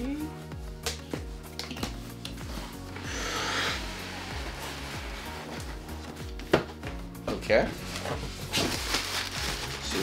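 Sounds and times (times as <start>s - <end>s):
background music with bass line: 0.0s - 10.0s
tissue paper rustling: 3.8s - 6.4s, 7.7s - 10.0s.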